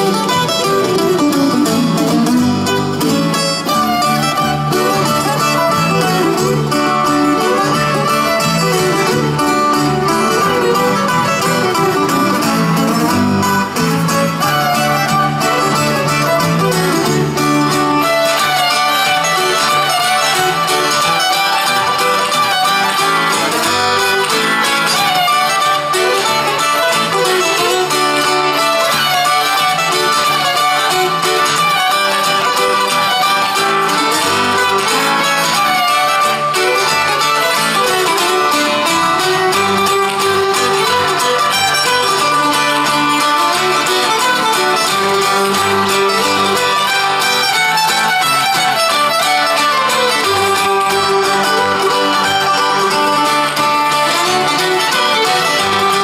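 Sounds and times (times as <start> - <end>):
acoustic guitar: 0.0 - 56.0
fiddle: 0.0 - 56.0
plucked strings: 0.0 - 56.0.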